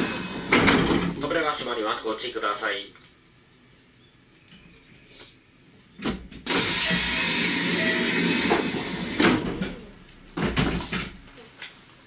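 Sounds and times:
train air brakes hissing: 0.0 - 0.6, 6.5 - 9.2.

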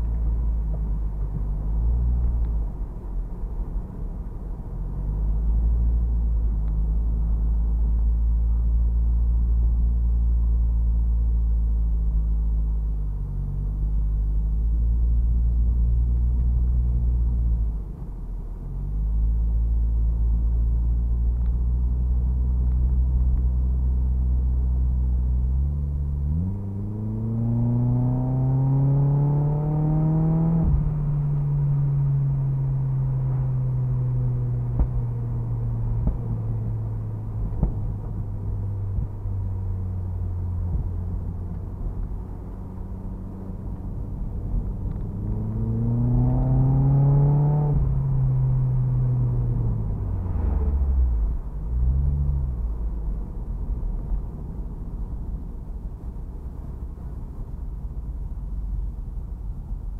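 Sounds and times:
car engine from inside cabin: 0.0 - 59.9
road rumble: 0.0 - 59.9.

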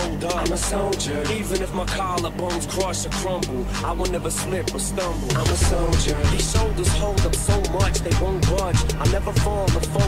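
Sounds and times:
trap music with rapping: 0.0 - 10.0.

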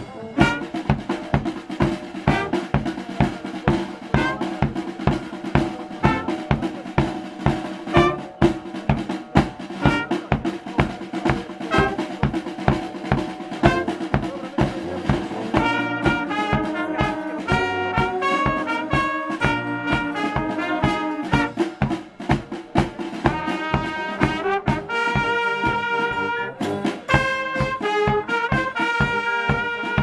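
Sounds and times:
bass drum and snare march beat: 0.0 - 30.0
brass band playing: 0.0 - 30.0
saxophones and brass: 0.0 - 30.0.

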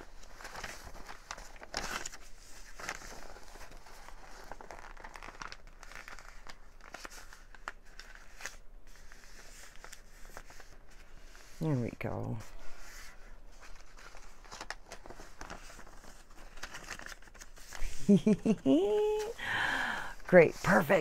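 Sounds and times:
paper rustling and crinkling: 0.0 - 19.4, 20.1 - 21.0.

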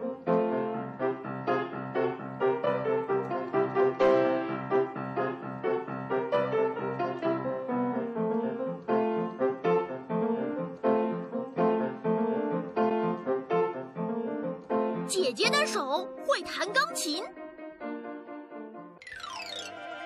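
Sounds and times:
piano playing a tune: 0.0 - 19.8.

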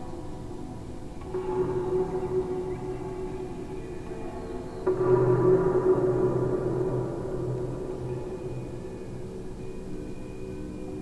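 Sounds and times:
low gong-like ringing tones: 1.2 - 11.0.

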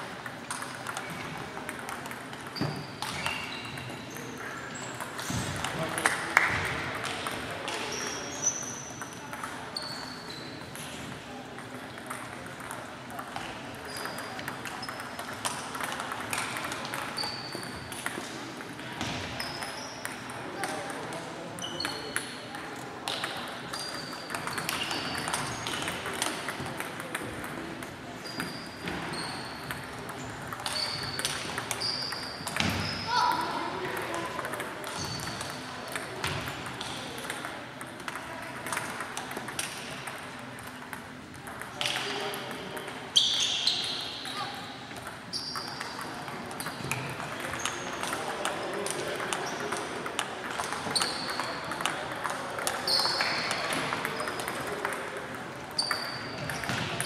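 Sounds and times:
table tennis balls clicking: 0.1 - 7.9, 9.0 - 9.8, 11.6 - 18.8, 21.8 - 32.8, 33.9 - 43.1, 44.9 - 57.0.

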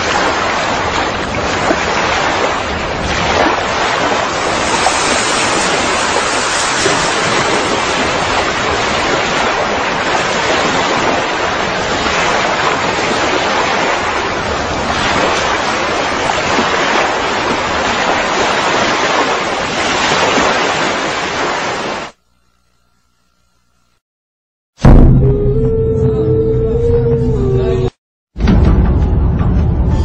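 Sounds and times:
wind rushing: 0.0 - 11.2
surf: 0.0 - 22.2.

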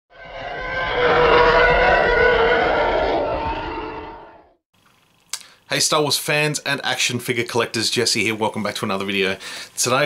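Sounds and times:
dense layered intro sound effect: 0.1 - 4.6.

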